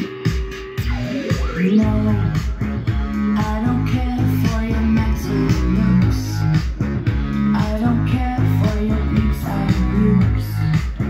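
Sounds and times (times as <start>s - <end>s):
rock music on vinyl: 0.0s - 11.0s.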